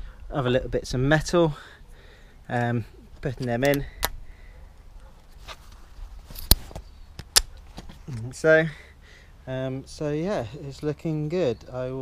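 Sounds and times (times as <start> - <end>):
soft handling clicks: 2.6 - 4.2
sharp plastic cap clicks: 7.2 - 7.6.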